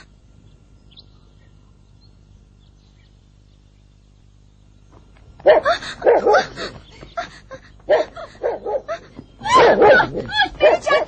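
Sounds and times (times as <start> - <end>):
dog barking and yelping: 5.4 - 6.6, 7.9 - 11.0.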